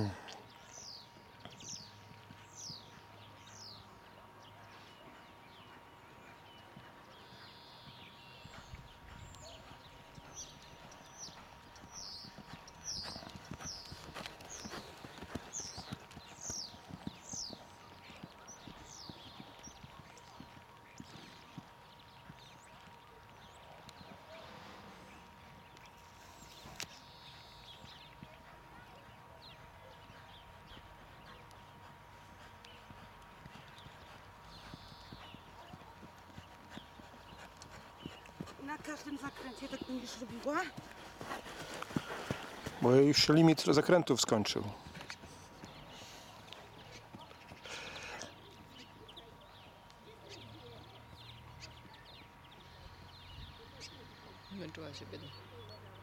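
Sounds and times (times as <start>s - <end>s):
horse hoofbeats on sand: 0.7s - 24.4s, 25.2s - 43.7s.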